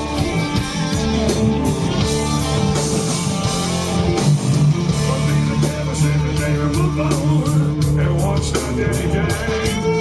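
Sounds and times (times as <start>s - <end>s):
drums and cymbals: 0.0s - 10.0s
electric bass low notes: 0.0s - 10.0s
electric guitars: 0.0s - 10.0s.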